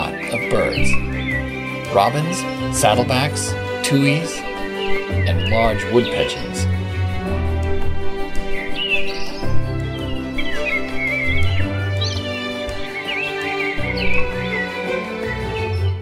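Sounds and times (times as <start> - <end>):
slow music with low held notes: 0.0 - 16.0
songbird singing: 0.0 - 16.0.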